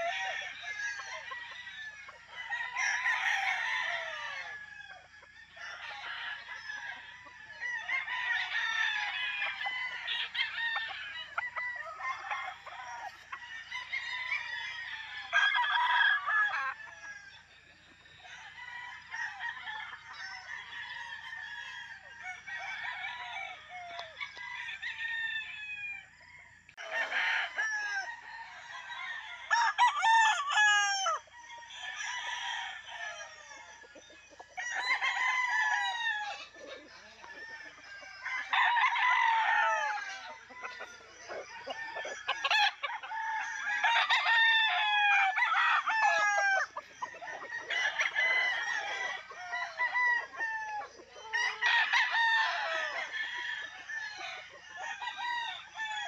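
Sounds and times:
roosters crowing: 0.0s - 56.0s.

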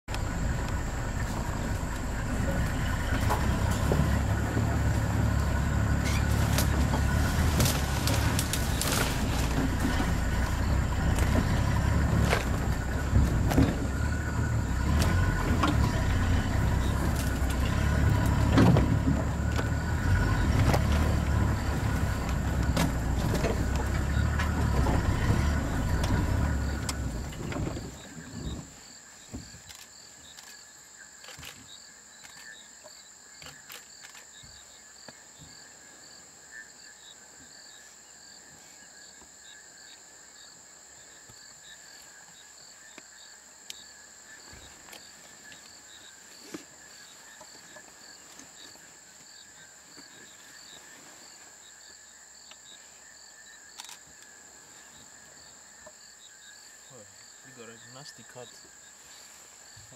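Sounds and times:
vehicle knocks and rattles: 0.1s - 29.5s
vehicle engine low rumble: 0.1s - 30.5s.

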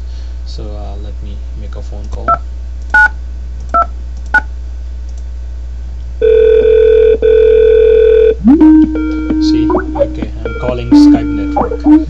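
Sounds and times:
telephone ringing tone: 6.2s - 8.4s
rising connection tone: 8.4s - 12.0s
keypad dialing beeps: 9.2s - 12.0s.

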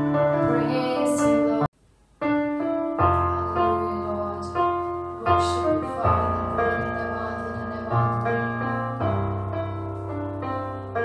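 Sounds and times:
keyboard piano chords: 0.0s - 11.0s.

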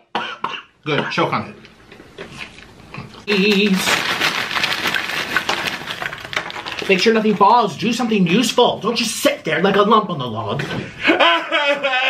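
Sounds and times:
chips pouring onto a tray: 3.3s - 7.7s.

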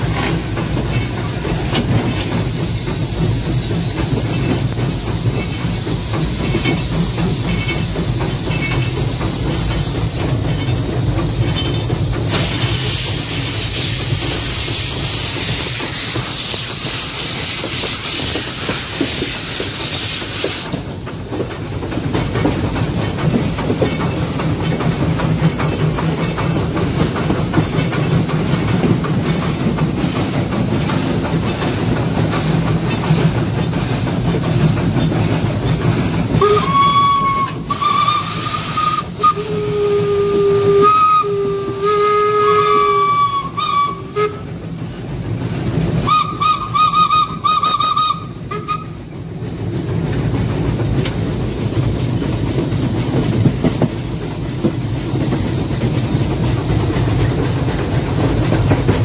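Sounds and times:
steam hiss: 0.0s - 59.0s
train running with low rumble: 0.0s - 59.0s
steam whistle blasts: 36.4s - 44.5s, 46.0s - 49.0s.

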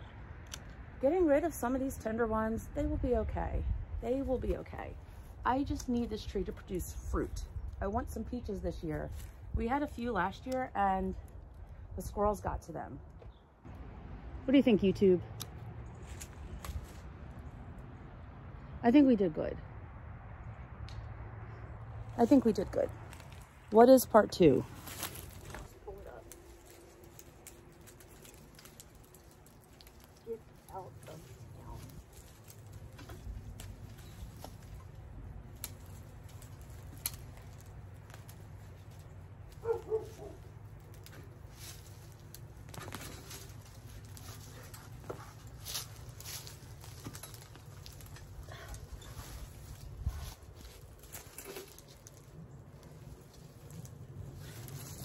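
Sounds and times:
dry stems and soil rustling: 0.0s - 13.8s, 14.6s - 18.0s, 22.0s - 55.0s
low outdoor rumble: 0.0s - 55.0s.

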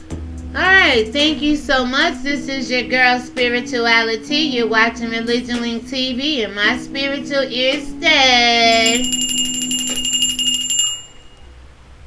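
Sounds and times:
fast bell-like ringing: 8.7s - 11.6s.

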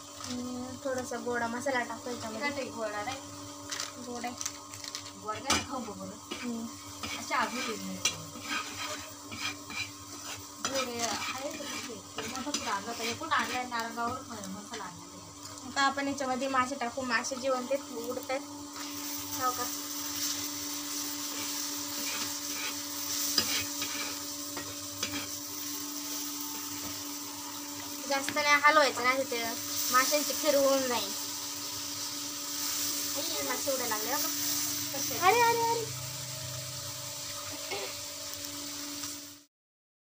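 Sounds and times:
fish sizzling in oil: 0.0s - 39.5s
wood fire hissing: 0.0s - 39.5s.

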